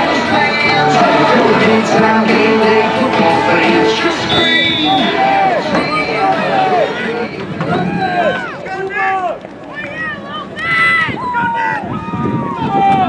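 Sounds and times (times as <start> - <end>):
voices shouting and cheering: 0.0 - 13.0.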